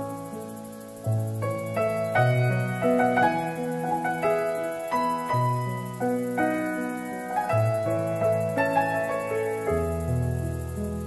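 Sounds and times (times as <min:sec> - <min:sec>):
slow piano music: 0:00.0 - 0:11.0.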